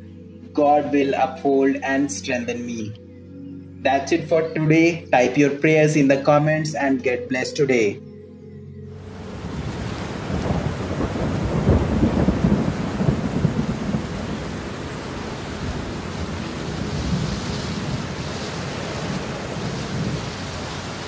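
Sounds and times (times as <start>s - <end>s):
steady rain: 9.0s - 21.0s
crackling rumble of thunder: 9.3s - 21.0s.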